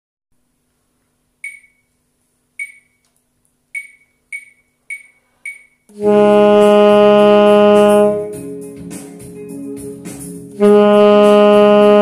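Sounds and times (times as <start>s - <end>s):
metronome ticks: 3.8s - 6.0s
alto saxophone note: 5.9s - 8.5s, 10.6s - 12.0s.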